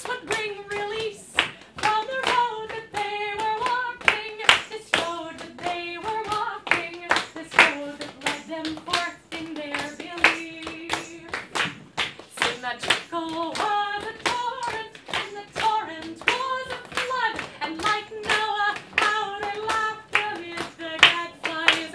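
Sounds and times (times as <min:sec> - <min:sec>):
audience clapping along: 0:00.0 - 0:21.9
woman singing a folk song: 0:00.0 - 0:21.9.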